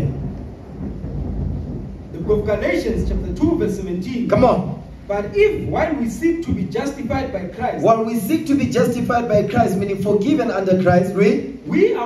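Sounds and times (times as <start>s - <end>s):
faint hiss: 0.0s - 12.0s
low steady rumble: 0.0s - 12.0s.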